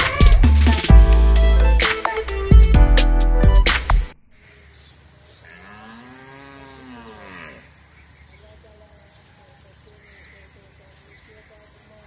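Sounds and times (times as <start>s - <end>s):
cow mooing: 5.4s - 7.7s.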